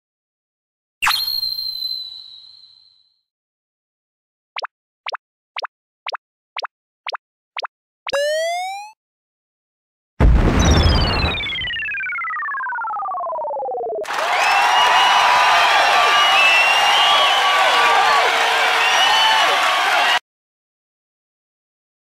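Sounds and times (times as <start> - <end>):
quick double blips: 4.6 - 9.0.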